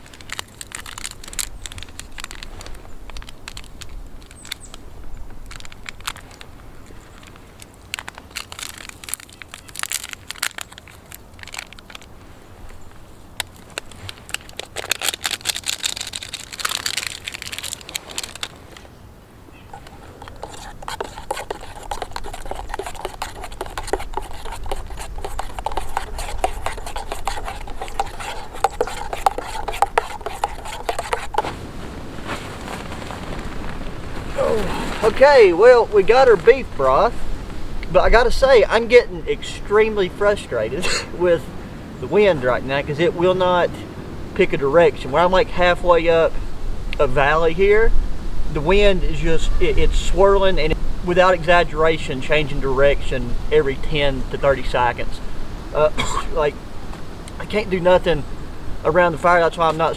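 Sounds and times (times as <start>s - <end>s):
packet crinkling and tearing: 0.0s - 12.1s, 13.4s - 18.8s, 19.7s - 31.6s
campfire crackling: 0.0s - 43.3s.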